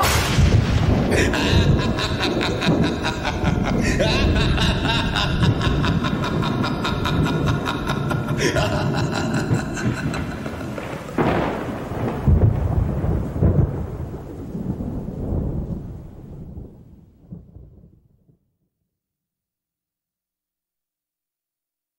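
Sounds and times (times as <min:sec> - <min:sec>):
thunder crack and rumble: 0:00.0 - 0:18.1.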